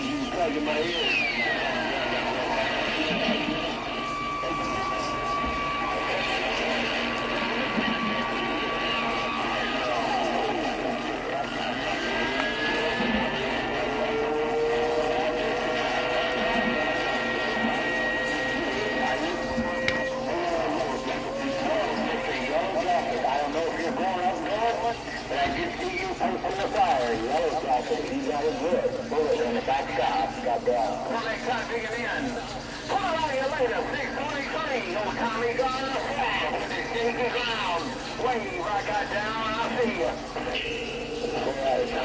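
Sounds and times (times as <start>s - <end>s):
garbled distorted radio voices: 0.0s - 42.0s
whistling tones: 0.1s - 2.0s, 3.6s - 10.3s.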